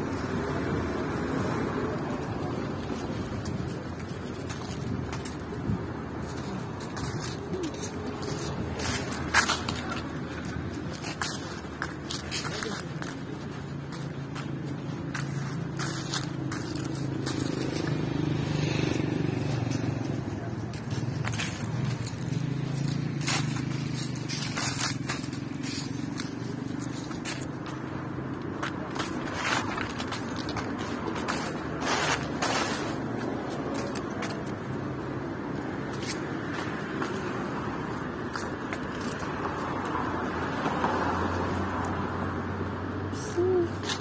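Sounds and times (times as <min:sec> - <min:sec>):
footsteps on dry leaves: 0:00.0 - 0:44.0
traffic hum: 0:00.0 - 0:44.0.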